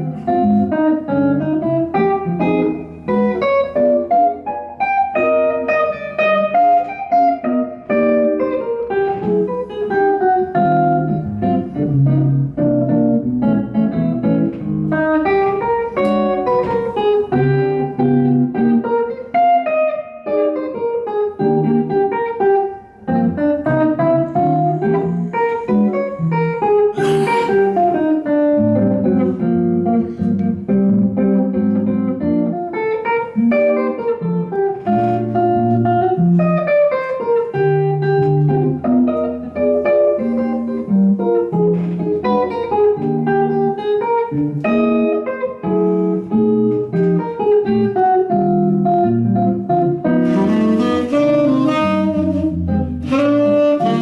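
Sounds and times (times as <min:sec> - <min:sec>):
jazz electric guitar: 0:00.0 - 0:54.0.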